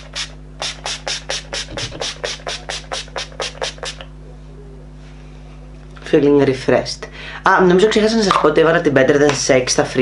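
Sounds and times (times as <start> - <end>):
spray bottle hissing sprays: 0.0 - 4.0
steady low hum: 0.0 - 10.0.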